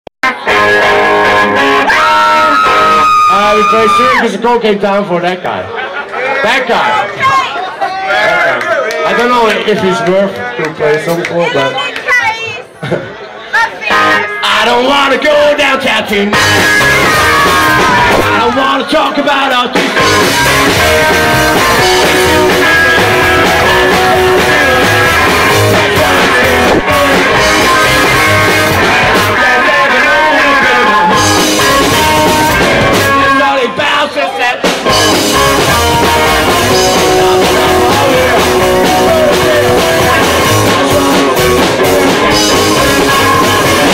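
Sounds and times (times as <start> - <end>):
electric guitar: 0.2 - 4.2, 16.0 - 33.8, 34.6 - 43.9
live rock band playing: 0.2 - 5.2, 13.8 - 43.9
drums: 0.2 - 5.6, 9.1 - 43.9
person singing lead vocal: 13.9 - 43.9.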